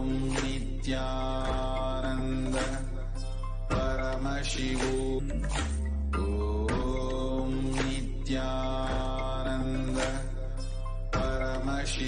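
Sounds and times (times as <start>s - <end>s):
mantra chanted in sung notes: 0.0s - 5.2s, 6.2s - 10.6s, 11.2s - 12.0s
steady low drone: 0.0s - 12.0s.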